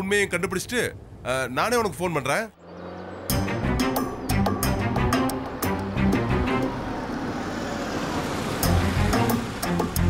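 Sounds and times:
vehicle engine and tyres: 0.0 - 10.0
music with deep notes and beats: 3.3 - 6.7, 8.6 - 10.0.

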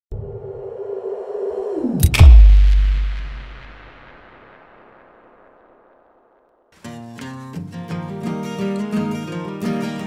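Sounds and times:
synthesized tone swooping down: 0.1 - 5.9.

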